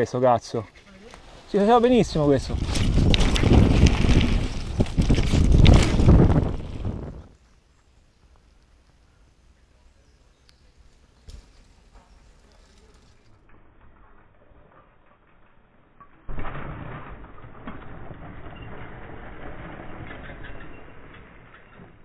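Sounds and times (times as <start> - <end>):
bike tyres on loose soil: 0.8 - 22.0
bike landing thump: 11.2 - 12.0.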